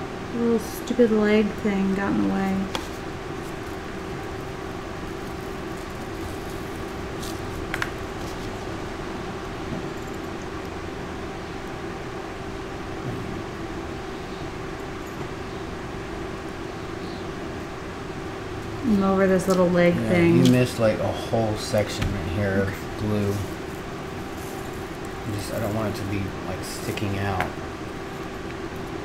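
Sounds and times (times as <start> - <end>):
room hum: 0.0 - 29.0.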